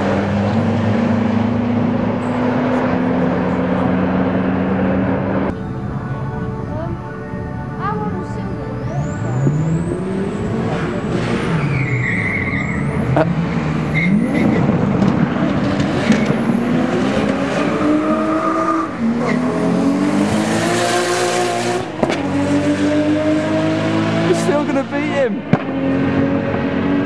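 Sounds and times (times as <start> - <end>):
car engines revving and accelerating: 0.0 - 7.0, 7.6 - 27.0.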